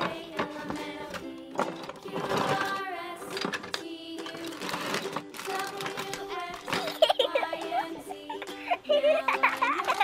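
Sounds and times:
background music: 0:00.0 - 0:10.0
plastic bag crinkling: 0:04.2 - 0:07.9, 0:09.4 - 0:10.0.

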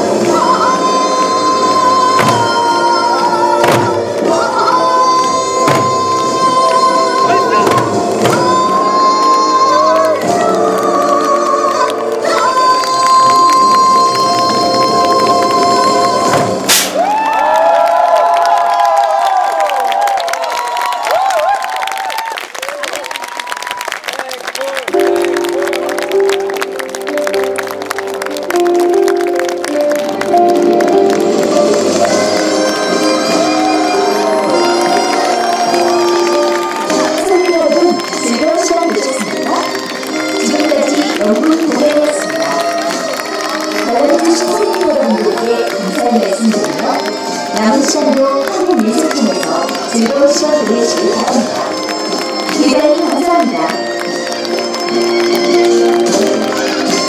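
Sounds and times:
barrel drums beaten with sticks: 0:02.2 - 0:02.7, 0:03.6 - 0:04.1, 0:05.6 - 0:06.0, 0:07.6 - 0:08.6.

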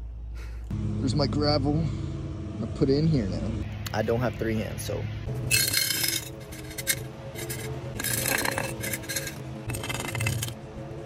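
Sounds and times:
pebbles rattling in glass jar: 0:05.5 - 0:10.6.

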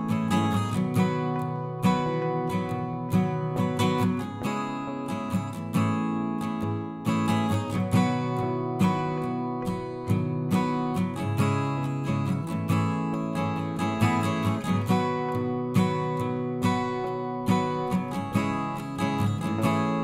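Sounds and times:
plucked instrumental music: 0:00.0 - 0:20.0.

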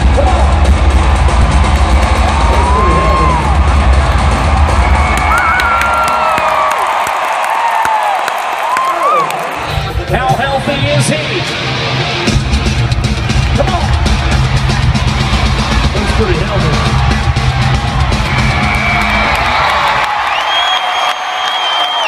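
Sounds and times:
loud rock music: 0:00.0 - 0:06.1, 0:09.5 - 0:20.1
crowd cheering and whooping: 0:00.0 - 0:09.9, 0:13.2 - 0:22.0.

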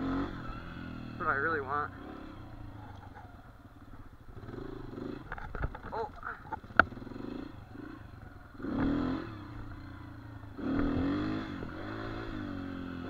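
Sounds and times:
dirt bike engine at low revs: 0:00.0 - 0:13.0.

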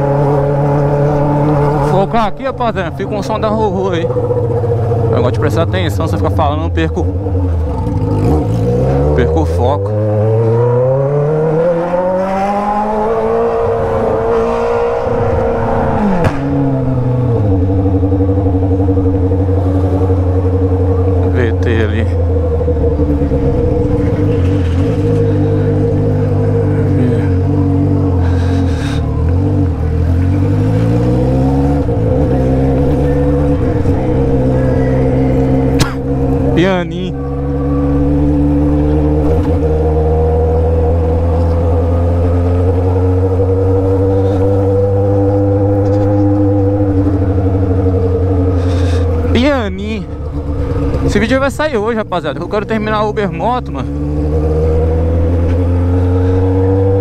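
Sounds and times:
motorcycle engine cruising: 0:00.0 - 0:57.0.

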